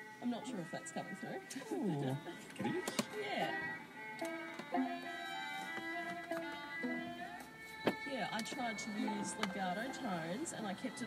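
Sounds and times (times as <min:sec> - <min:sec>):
layered violin long notes: 0:00.0 - 0:11.0
bow tapping on strings: 0:04.2 - 0:09.9.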